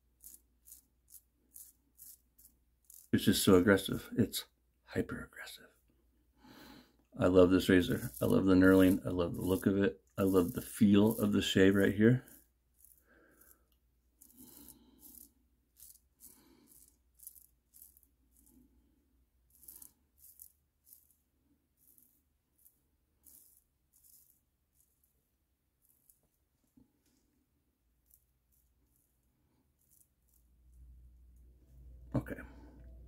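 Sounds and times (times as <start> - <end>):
razor scraping stubble: 0.2 - 4.1, 7.2 - 18.7, 19.4 - 21.2, 21.8 - 25.2, 25.8 - 26.3, 28.0 - 31.1.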